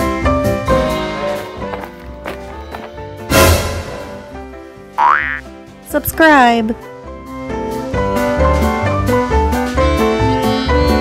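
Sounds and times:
upbeat background music: 0:00.0 - 0:11.0.

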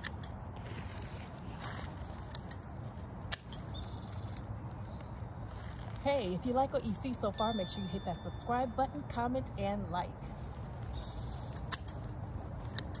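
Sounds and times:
pruning shears snipping branches: 0:00.0 - 0:03.7, 0:11.4 - 0:13.0.

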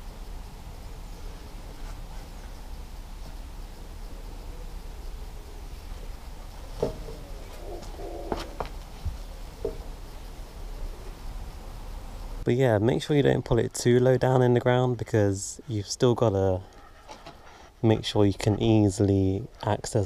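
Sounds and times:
low background hiss: 0:00.0 - 0:20.0
knocks and rubbing: 0:06.5 - 0:10.1.

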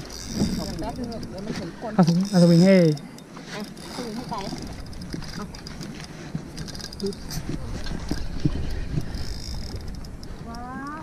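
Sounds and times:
fishing gear clattering in boat: 0:00.0 - 0:11.0.

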